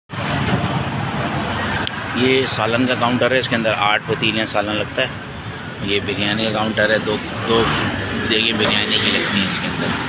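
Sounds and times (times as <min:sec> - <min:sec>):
street traffic rumble: 0:00.1 - 0:10.0.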